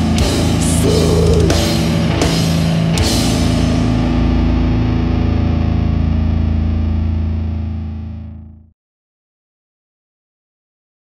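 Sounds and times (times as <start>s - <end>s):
distorted guitar and bass chord ringing: 0.0s - 8.7s.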